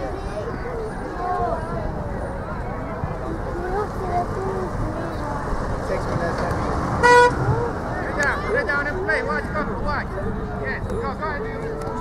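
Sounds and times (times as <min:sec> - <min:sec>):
short horn toot: 0:07.0 - 0:07.4.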